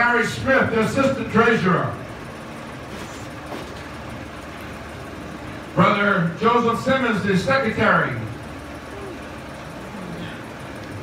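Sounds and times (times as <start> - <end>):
low steady hum and hiss: 0.0 - 11.0.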